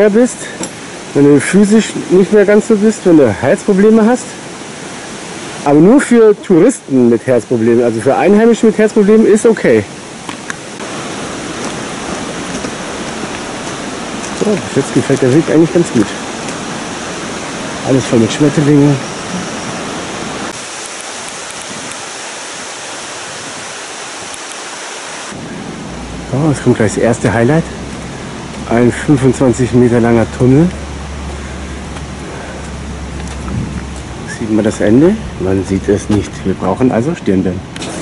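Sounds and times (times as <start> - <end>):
flowing water: 0.0 - 38.0
steady rushing noise: 0.0 - 38.0
low rumble: 25.4 - 36.6.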